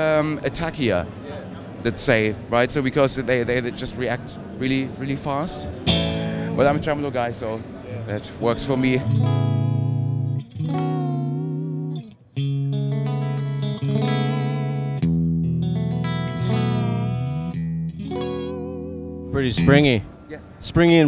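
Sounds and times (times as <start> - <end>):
electric guitar chords: 5.6 - 7.1, 8.7 - 20.2.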